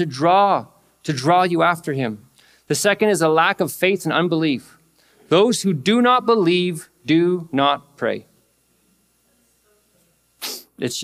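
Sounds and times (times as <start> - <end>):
man speaking: 0.0 - 8.3, 10.7 - 11.0.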